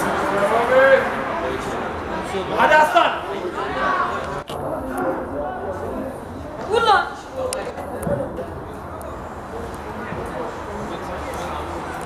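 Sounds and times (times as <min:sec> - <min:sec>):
faint talk of people: 0:00.0 - 0:12.0.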